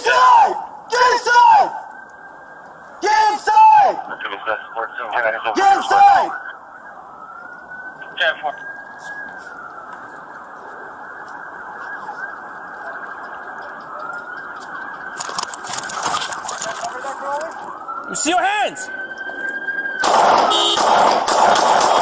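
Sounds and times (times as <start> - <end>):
police siren wailing: 0.0 - 22.0
rustling noise: 8.8 - 13.0, 15.2 - 17.7.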